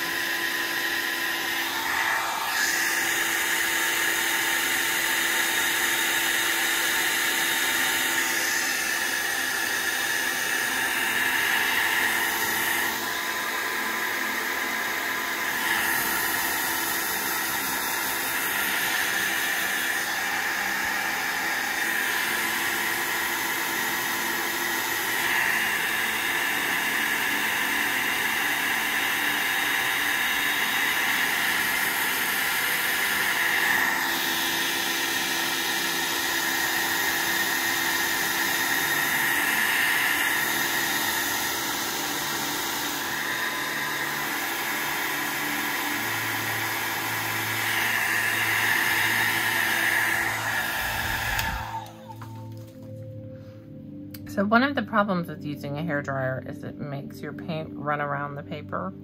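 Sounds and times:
hair dryer blowing air: 0.0 - 52.8.

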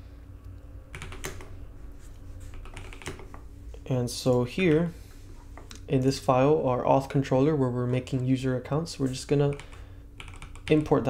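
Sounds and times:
low steady hum: 0.0 - 11.0
keyboard keystrokes: 1.0 - 1.5, 2.5 - 3.4, 9.5 - 10.9.

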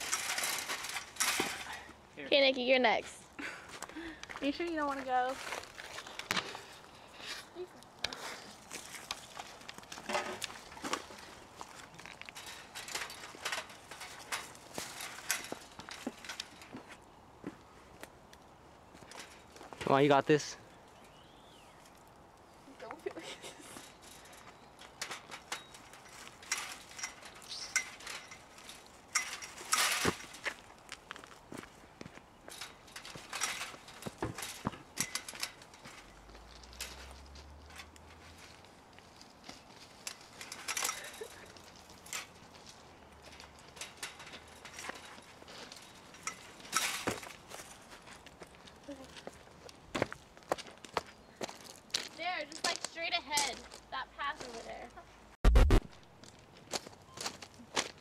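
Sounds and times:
chain-link fence rattling: 0.0 - 1.9, 8.5 - 16.8, 23.1 - 30.9, 32.4 - 49.1.

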